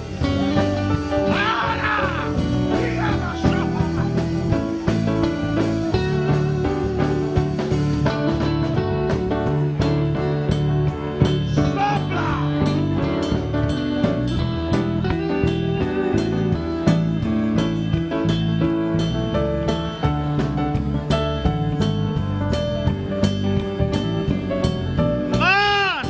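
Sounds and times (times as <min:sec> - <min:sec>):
worship band playing slow music: 0:00.0 - 0:26.0.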